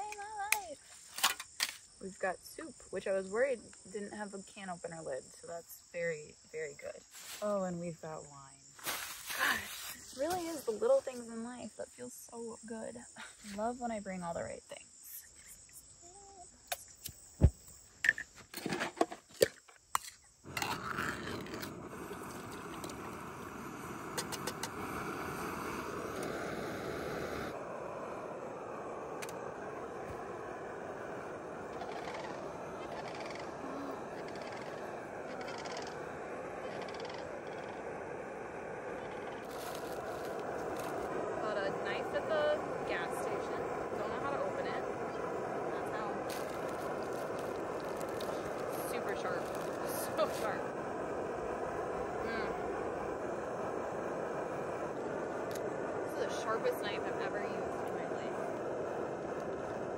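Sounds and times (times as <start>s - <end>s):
camp stove burning with rushing hiss: 0.0s - 59.9s.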